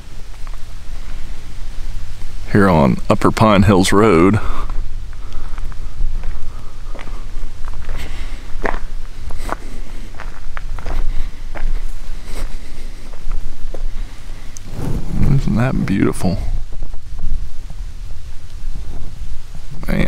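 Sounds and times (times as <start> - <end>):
crunching footsteps: 0.0 - 2.9, 4.2 - 17.8
wind rumbling on microphone: 0.0 - 20.0.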